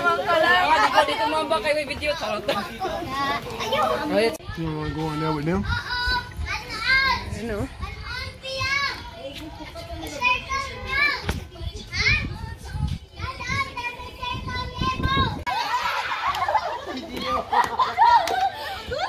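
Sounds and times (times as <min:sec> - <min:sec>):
children shouting while playing: 0:14.2 - 0:19.0.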